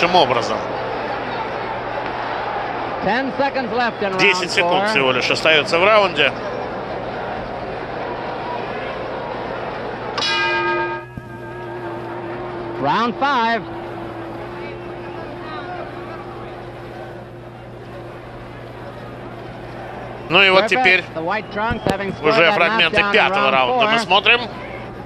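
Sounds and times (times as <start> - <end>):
arena crowd noise: 0.0 - 25.0
boxing ring bell: 10.2 - 17.4.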